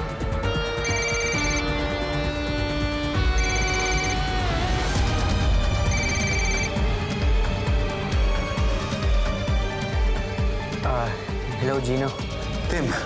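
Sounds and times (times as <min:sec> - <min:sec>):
dramatic background music: 0:00.0 - 0:13.0
mobile phone ringing: 0:00.7 - 0:01.8, 0:03.2 - 0:04.3, 0:05.8 - 0:06.8.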